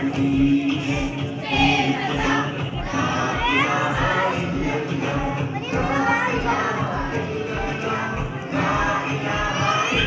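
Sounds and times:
children singing and shouting: 0:00.0 - 0:10.0
music with a steady beat: 0:00.0 - 0:10.0.

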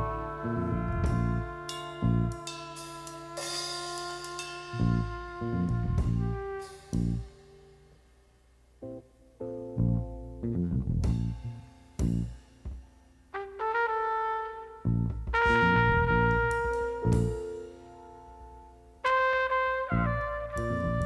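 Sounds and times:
held brass-like notes: 0:00.0 - 0:08.2, 0:13.3 - 0:21.0
punchy low hits: 0:10.8 - 0:12.4.

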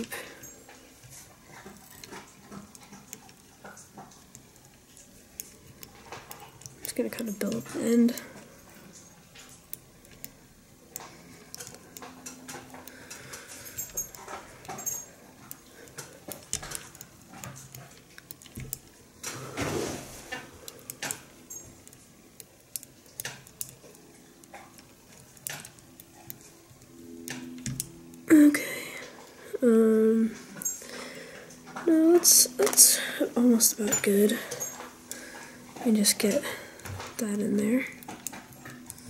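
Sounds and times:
small handling clicks: 0:20.4 - 0:28.2.

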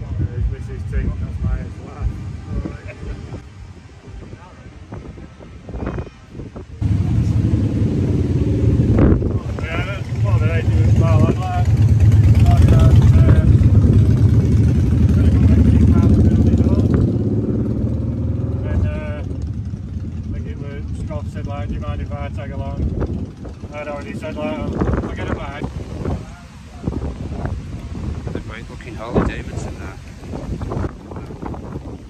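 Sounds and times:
people talking: 0:00.0 - 0:03.4, 0:09.3 - 0:13.8, 0:15.0 - 0:17.0, 0:18.6 - 0:19.4, 0:20.2 - 0:22.9, 0:23.6 - 0:27.6, 0:28.2 - 0:30.0
motorcycle engine idling: 0:08.4 - 0:17.1, 0:18.9 - 0:25.2.

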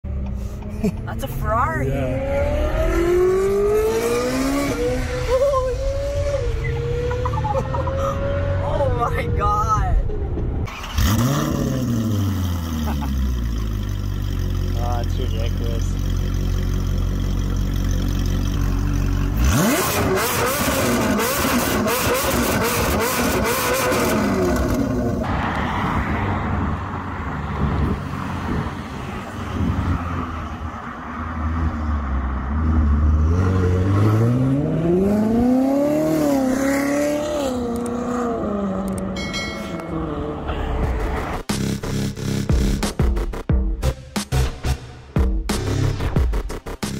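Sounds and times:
sports car engine idling and revving: 0:00.1 - 0:46.9.

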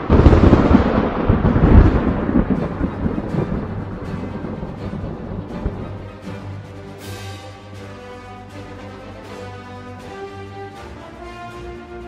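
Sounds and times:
loud deep rumbling: 0:00.0 - 0:07.8.

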